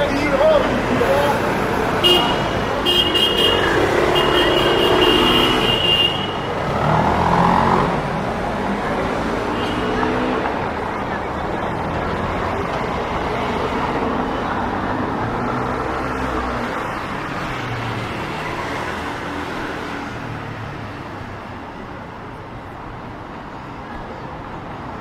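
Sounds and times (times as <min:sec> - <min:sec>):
cars passing close by: 0:00.0 - 0:25.0
traffic on cobbled street: 0:00.0 - 0:25.0.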